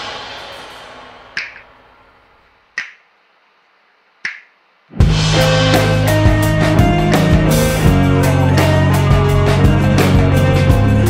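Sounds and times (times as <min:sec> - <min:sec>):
rock song: 0:05.0 - 0:11.0
rock song with drums bass and guitar: 0:05.0 - 0:11.0.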